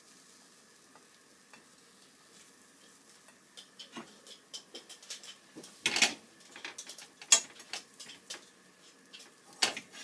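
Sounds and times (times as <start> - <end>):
egg sizzling in a pan: 0.0 - 10.0.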